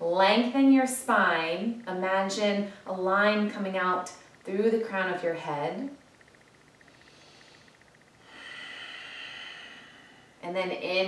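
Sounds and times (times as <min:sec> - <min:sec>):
person breathing: 0:06.9 - 0:10.4.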